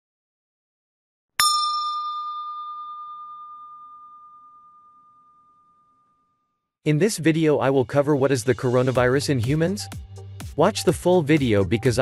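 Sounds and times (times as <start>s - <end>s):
bell-like ding ringing: 1.4s - 6.6s.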